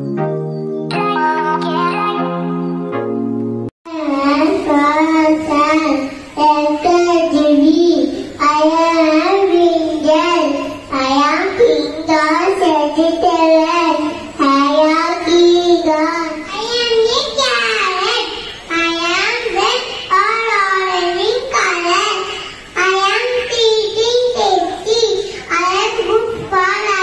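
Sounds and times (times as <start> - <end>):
child singing into a microphone: 3.9 - 27.0.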